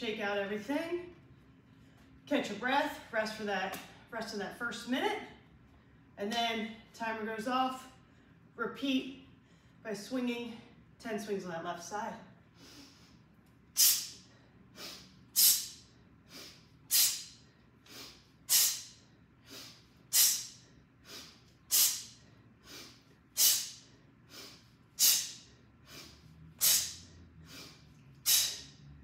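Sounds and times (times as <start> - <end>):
woman exhaling forcefully: 13.8 - 28.8
woman inhaling: 13.8 - 28.8.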